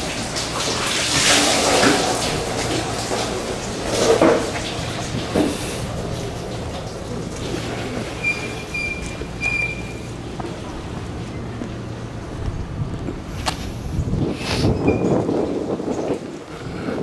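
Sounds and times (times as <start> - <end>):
low mechanical hum: 0.0 - 17.0.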